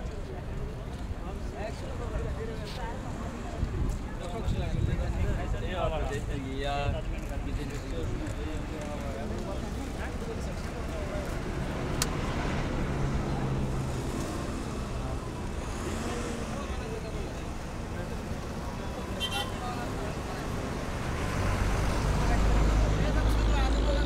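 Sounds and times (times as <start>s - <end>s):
murmur of men talking: 0.0s - 21.0s.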